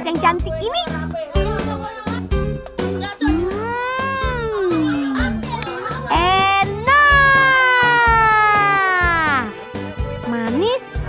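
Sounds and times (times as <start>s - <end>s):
background music with steady beat: 0.0s - 11.0s
high sliding vocal note: 3.2s - 9.5s.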